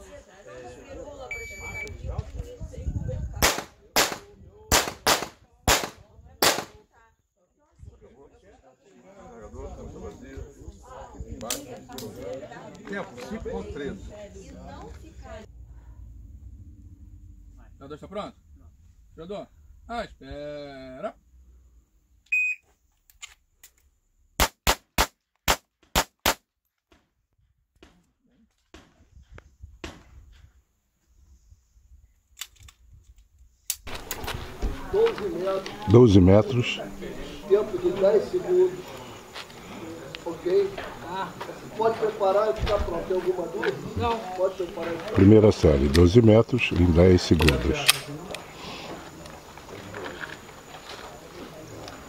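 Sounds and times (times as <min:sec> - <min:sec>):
pistol shots: 0:03.4 - 0:06.8, 0:24.4 - 0:26.4.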